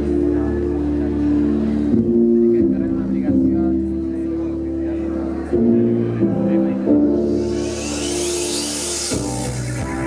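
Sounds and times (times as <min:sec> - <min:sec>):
bass line: 0:00.0 - 0:10.0
synth chords: 0:00.0 - 0:10.0.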